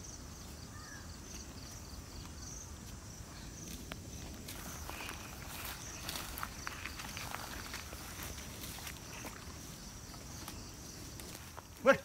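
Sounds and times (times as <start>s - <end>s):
insects chirring: 0.0s - 12.0s
rustling in grass: 0.0s - 12.0s
footsteps in grass: 0.2s - 12.0s.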